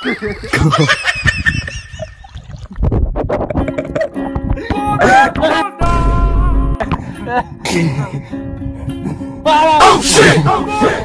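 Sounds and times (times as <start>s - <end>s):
water splashing: 1.5s - 4.6s
plucked-string music: 3.1s - 11.0s.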